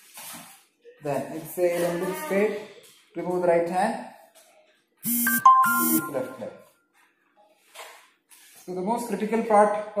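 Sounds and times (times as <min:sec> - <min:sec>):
short electronic melody: 0:05.1 - 0:06.6.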